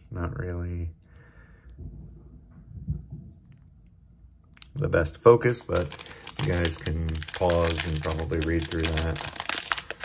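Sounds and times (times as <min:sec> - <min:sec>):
foil card pack crinkling: 0:05.5 - 0:10.0.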